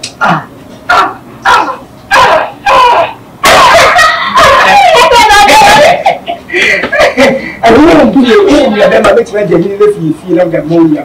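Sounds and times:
person yelping: 0.2s - 6.2s.

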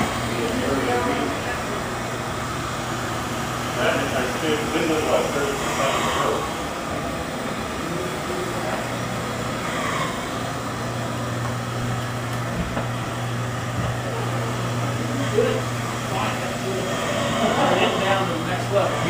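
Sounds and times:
noisy background: 0.0s - 19.0s
steady low hum: 0.0s - 19.0s.

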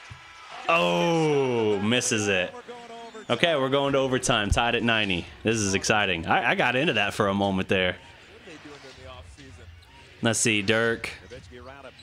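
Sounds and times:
arena crowd noise: 0.0s - 12.0s
commentator talking: 0.7s - 8.0s, 8.6s - 12.0s.

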